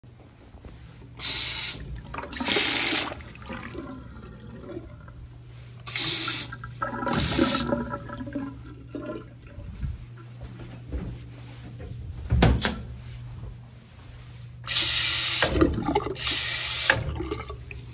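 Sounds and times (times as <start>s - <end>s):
steady low hum: 0.1s - 14.7s
faucet water running into basin: 1.2s - 5.2s, 5.8s - 9.5s, 14.7s - 17.9s.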